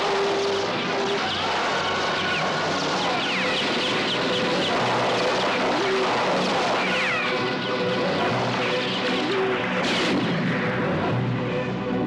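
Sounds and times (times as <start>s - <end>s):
battle din: 0.0s - 11.7s
film music score: 0.0s - 12.0s
sharp gunfire blast: 3.1s - 10.9s.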